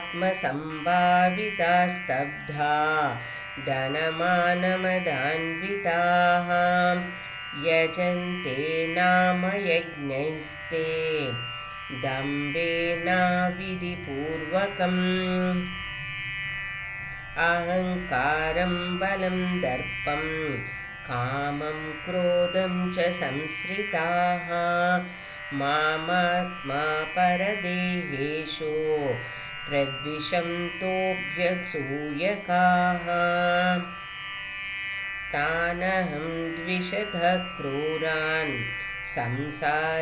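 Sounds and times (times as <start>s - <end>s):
person singing verse: 0.0s - 16.0s, 17.4s - 34.0s, 35.3s - 40.0s
person chanting a held note: 0.0s - 34.2s, 35.3s - 40.0s
steady musical drone: 0.0s - 40.0s.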